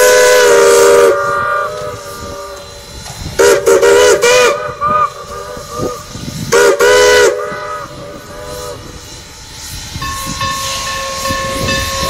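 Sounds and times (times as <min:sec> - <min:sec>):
steam whistle chord: 0:00.0 - 0:12.0.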